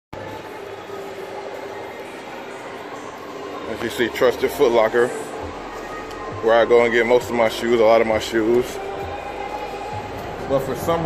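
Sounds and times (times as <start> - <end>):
shopping mall background hum: 0.1 - 11.0.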